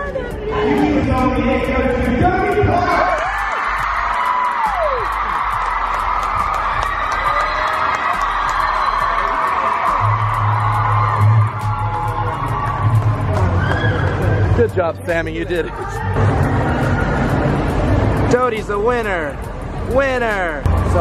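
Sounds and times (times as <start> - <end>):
music with heavy bass: 0.0 - 21.0
crowd cheering and screaming: 2.5 - 14.6.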